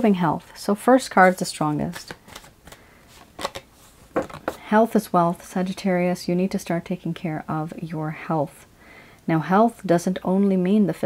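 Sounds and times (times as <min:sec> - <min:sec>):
cards being shuffled: 0:01.1 - 0:04.6.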